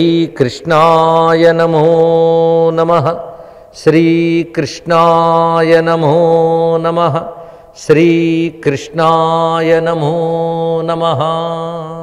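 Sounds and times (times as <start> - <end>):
man chanting in monotone: 0.0 - 12.0.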